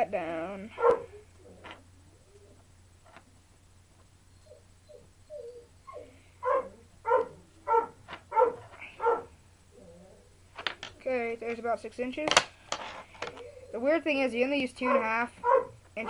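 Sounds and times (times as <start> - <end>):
dog barking: 0.8 - 1.2, 6.4 - 9.3, 14.8 - 15.8.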